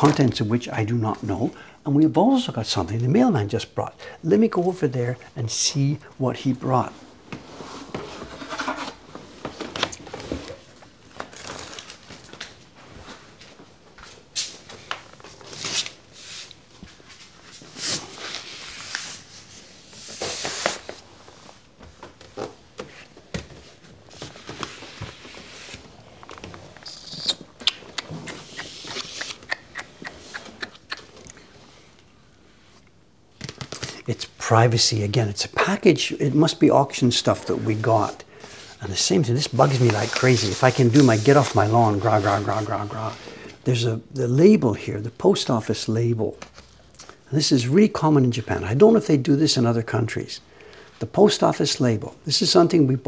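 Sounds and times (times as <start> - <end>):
padded envelope rustling: 39.4 - 42.9.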